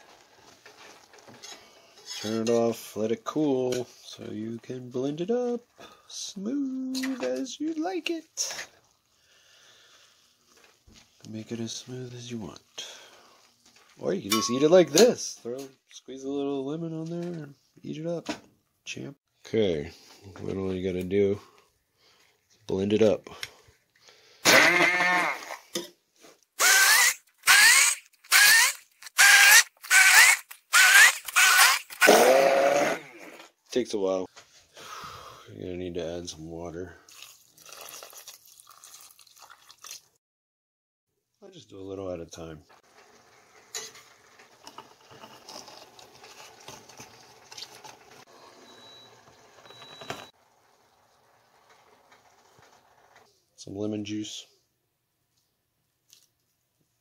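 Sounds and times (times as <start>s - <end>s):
immersion blender whining: 24.5s - 25.6s, 26.6s - 33.4s
juicer crackling and clicks: 26.6s - 32.7s.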